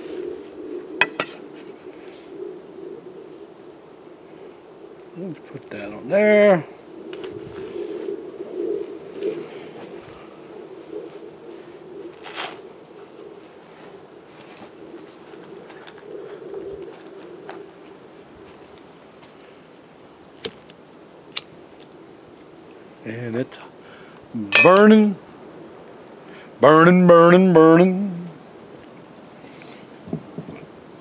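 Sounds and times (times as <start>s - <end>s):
faint wavering hum: 0.0s - 19.0s, 24.4s - 29.5s
handling of a camp stove: 1.0s - 1.7s.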